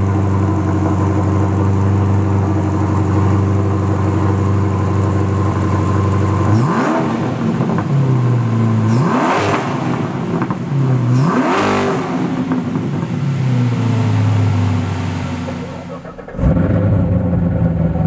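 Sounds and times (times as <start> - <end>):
car engine idling and revving: 0.0 - 18.0.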